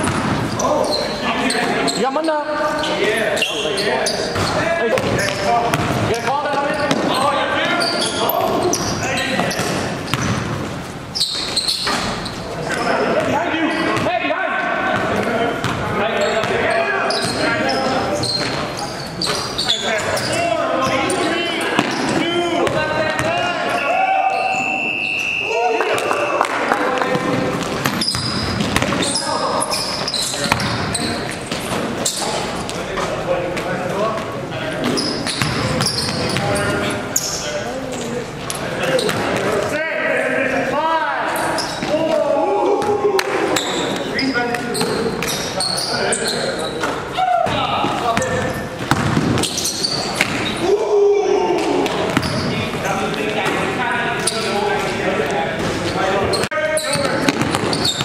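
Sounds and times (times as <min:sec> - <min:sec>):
basketball bouncing on court: 0:00.0 - 0:00.6, 0:04.3 - 0:12.2, 0:14.9 - 0:17.5, 0:21.7 - 0:23.5, 0:27.1 - 0:32.1, 0:34.8 - 0:36.7, 0:47.4 - 0:50.5, 0:51.8 - 0:52.5, 0:56.3 - 0:58.0
players calling out: 0:00.0 - 0:33.6, 0:34.4 - 0:58.0.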